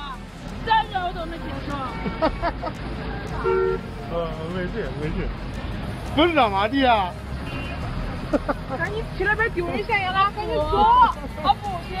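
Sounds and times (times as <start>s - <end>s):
car horn honk: 3.4s - 3.9s.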